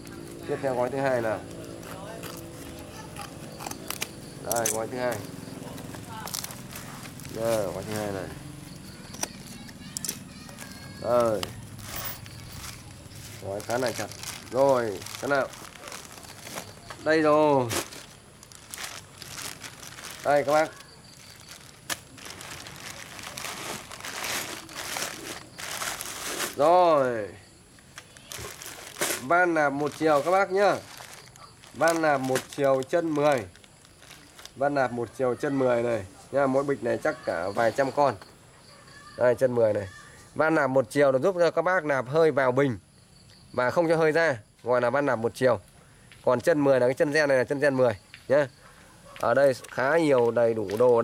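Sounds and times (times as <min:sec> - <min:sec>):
plastic bag crinkling: 0:00.0 - 0:27.0, 0:27.8 - 0:34.6.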